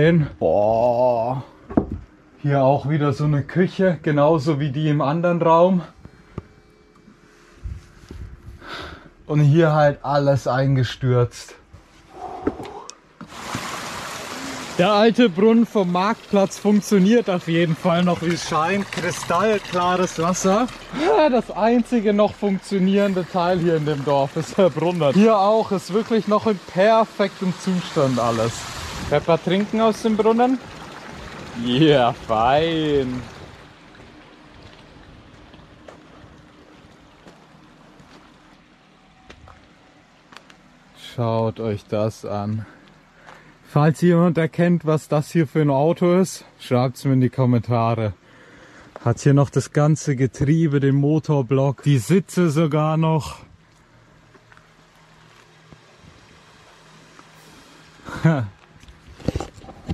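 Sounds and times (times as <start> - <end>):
faint outdoor hiss: 0.0 - 59.9
fountain water pouring: 13.2 - 39.0.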